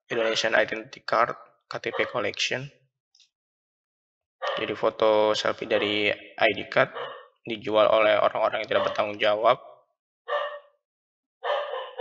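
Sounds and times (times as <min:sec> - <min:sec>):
person speaking: 0:00.1 - 0:02.7, 0:04.5 - 0:09.6.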